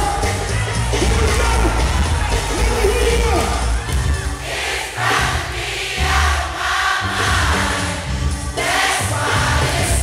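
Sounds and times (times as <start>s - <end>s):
neo-soul band music: 0.0s - 10.0s
choir-like voices singing: 4.3s - 10.0s.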